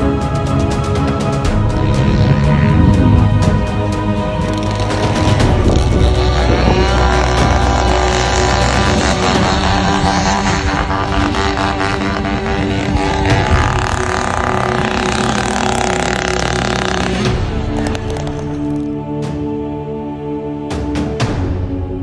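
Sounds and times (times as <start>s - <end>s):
background music: 0.0s - 22.0s
motorcycle engine revving: 0.7s - 19.0s.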